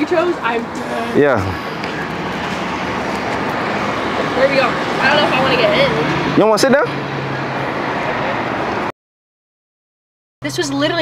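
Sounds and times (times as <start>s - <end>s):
motor vehicle rumble and hiss: 0.0s - 8.9s.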